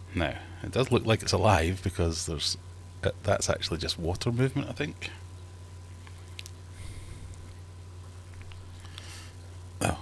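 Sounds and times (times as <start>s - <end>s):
steady low hum: 0.0s - 10.0s
man speaking: 0.1s - 5.2s.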